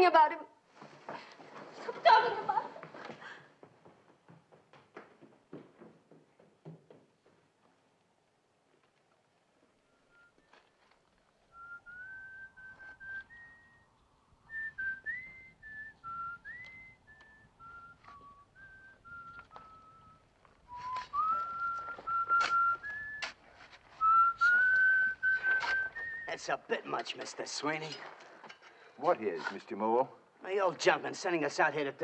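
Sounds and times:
man whistling a slow tune: 9.9 - 10.6, 11.5 - 23.4, 24.0 - 26.3.

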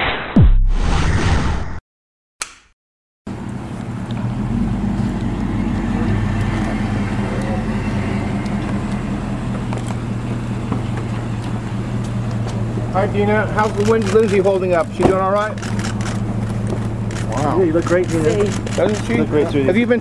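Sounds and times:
car engine idling: 3.3 - 20.0
street noise: 3.3 - 20.0.

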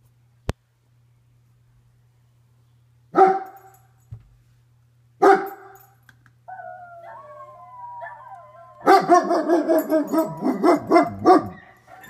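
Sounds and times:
dog barking: 3.2 - 3.6, 5.2 - 5.8, 8.8 - 12.0
dog howling: 6.5 - 12.0.

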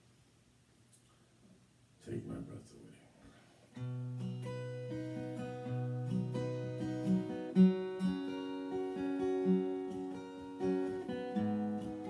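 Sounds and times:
acoustic guitar chords: 3.7 - 12.0.

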